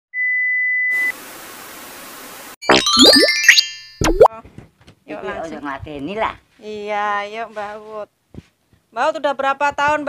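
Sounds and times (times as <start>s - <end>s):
high electronic beep: 2.6s - 4.3s.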